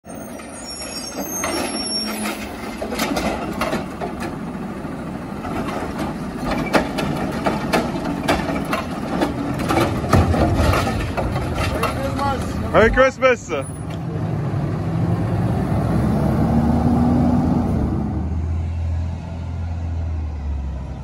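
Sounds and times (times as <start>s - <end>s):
garbage truck running: 0.0s - 20.9s
knocks of cart and arm: 5.6s - 12.6s.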